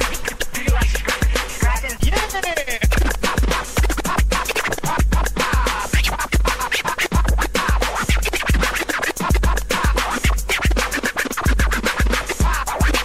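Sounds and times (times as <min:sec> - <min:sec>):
hip hop beat with heavy kick drum: 0:00.0 - 0:13.0
vinyl record scratching: 0:00.0 - 0:13.0.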